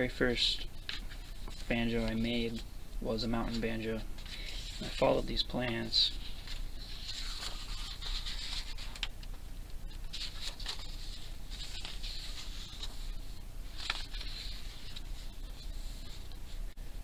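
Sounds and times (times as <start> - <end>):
book pages rustling and flicking: 0.8 - 2.7, 3.4 - 16.7.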